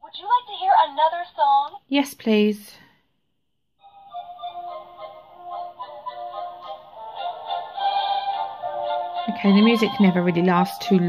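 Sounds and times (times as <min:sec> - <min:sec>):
toy playing electronic tune: 0:03.8 - 0:11.0.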